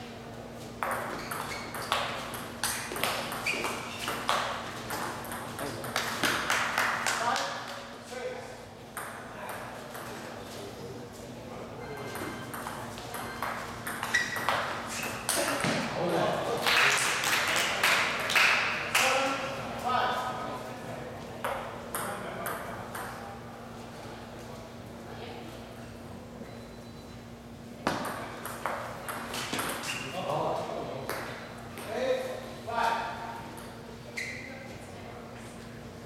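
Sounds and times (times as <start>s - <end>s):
table tennis ball hits: 0.8s - 7.2s, 12.2s - 15.9s, 27.9s - 29.9s.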